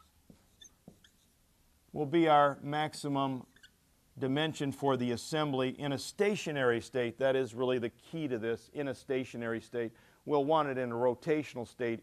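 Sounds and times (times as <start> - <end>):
marker squeaking on whiteboard: 0.0 - 1.4, 3.4 - 3.8.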